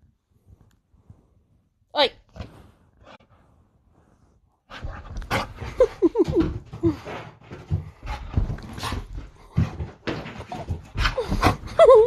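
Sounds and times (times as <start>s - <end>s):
dog paws thumping and scuffling: 4.7s - 12.0s.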